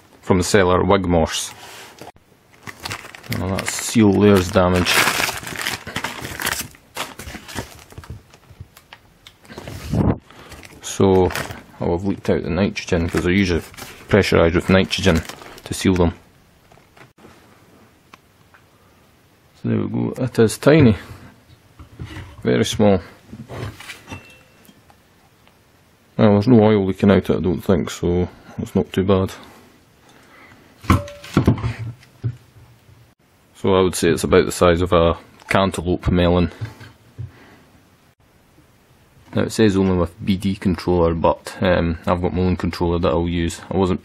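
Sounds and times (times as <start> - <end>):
plastic wrap crinkling: 2.5 - 11.8, 12.7 - 17.1
handling noise: 30.8 - 33.1.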